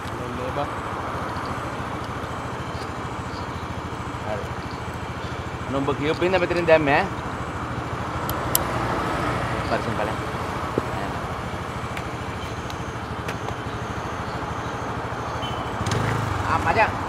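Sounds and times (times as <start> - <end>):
motor scooter engine idling: 0.0 - 17.0
road traffic passing: 0.0 - 17.0.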